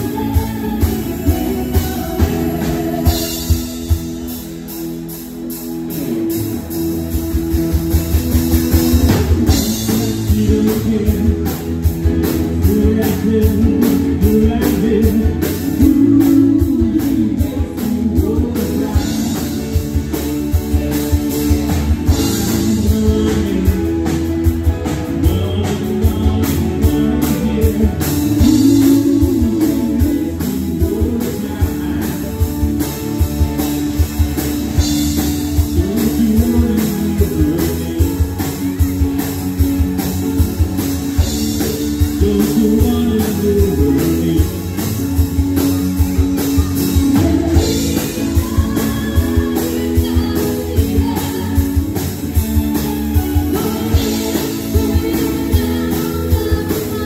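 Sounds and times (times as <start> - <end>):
women singing: 0.0 - 3.6, 47.0 - 52.1, 52.9 - 57.0
drum kit beat: 0.0 - 57.0
guitar: 0.0 - 57.0.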